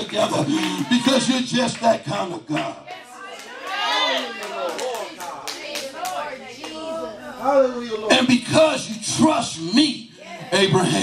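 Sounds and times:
people clapping: 0:00.0 - 0:06.9.

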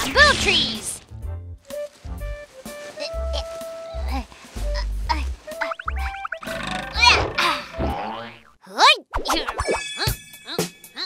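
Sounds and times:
plucky background music: 0:01.6 - 0:08.1.

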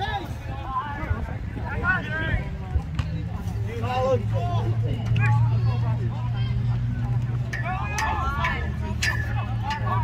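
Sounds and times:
voices calling out: 0:00.0 - 0:10.0
loud shouts: 0:07.5 - 0:10.0.

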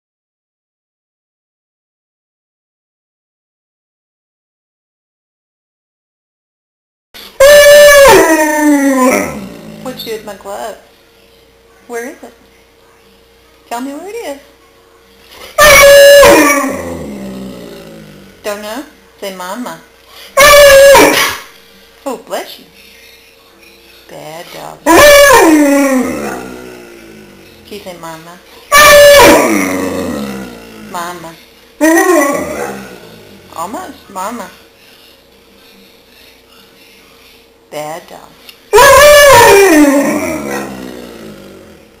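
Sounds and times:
dog howling: 0:07.4 - 0:10.0, 0:15.6 - 0:18.4, 0:20.4 - 0:21.4, 0:24.8 - 0:27.6, 0:28.7 - 0:31.0, 0:31.8 - 0:33.5, 0:38.7 - 0:41.9.

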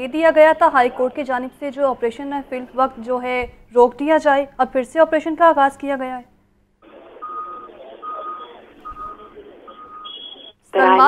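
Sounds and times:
reversing alarm beeping: 0:07.2 - 0:10.5.

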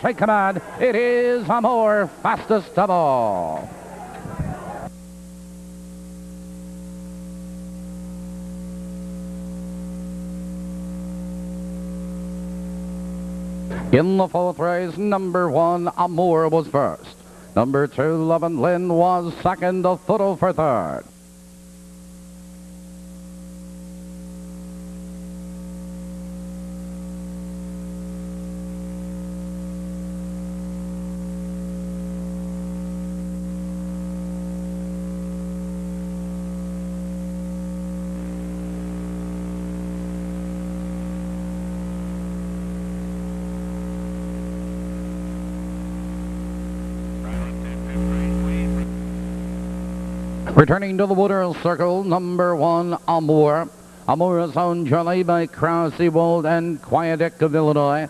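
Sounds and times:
buzzy mains hum: 0:00.0 - 0:58.0.

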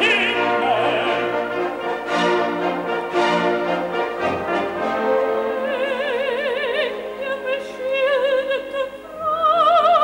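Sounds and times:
orchestra playing sustained chords: 0:00.0 - 0:05.6
soprano singing with vibrato: 0:05.6 - 0:10.0.

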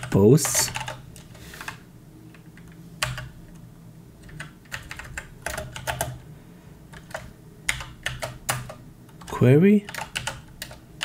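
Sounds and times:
typing on computer keyboard: 0:00.0 - 0:01.0, 0:02.6 - 0:03.6, 0:04.2 - 0:06.2, 0:06.9 - 0:11.0.

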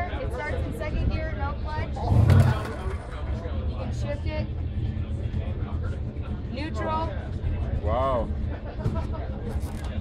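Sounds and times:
people's voices: 0:00.0 - 0:10.0
steady low rumble: 0:00.0 - 0:10.0.

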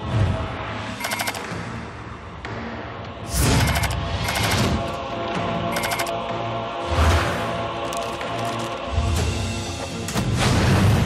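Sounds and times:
tense film score: 0:00.0 - 0:11.0
rapid clicking: 0:01.0 - 0:01.4, 0:03.4 - 0:04.9, 0:05.8 - 0:06.1.

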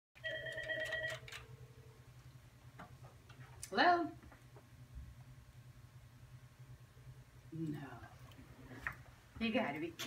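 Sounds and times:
phone ringing beep: 0:00.2 - 0:01.4.

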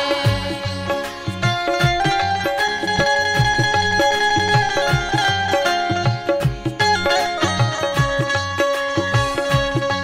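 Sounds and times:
held melodic line: 0:00.0 - 0:10.0
steady low drum beat: 0:00.1 - 0:08.4.

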